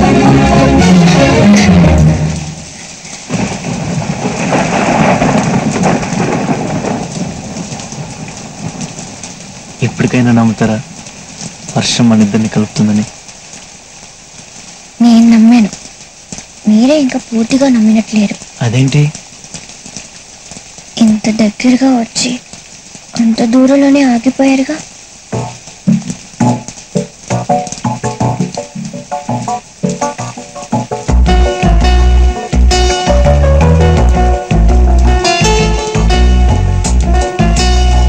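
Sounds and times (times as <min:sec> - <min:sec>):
heavy rain pouring: 0:00.0 - 0:38.0
horse hooves clopping: 0:25.4 - 0:32.0.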